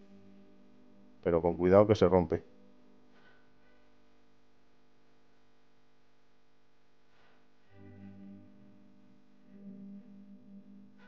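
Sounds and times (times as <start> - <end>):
faint guitar music with effects: 7.7 - 11.0.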